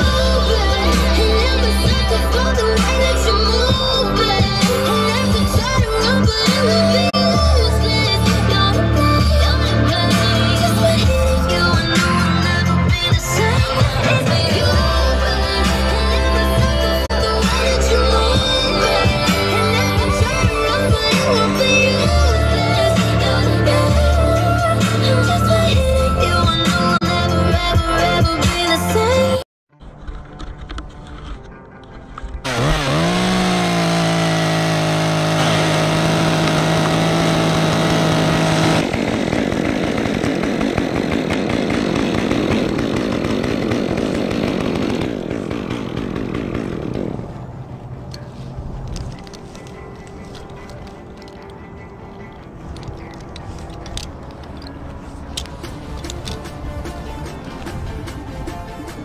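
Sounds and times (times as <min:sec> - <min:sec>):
chainsaw revving: 0:32.4 - 0:47.3.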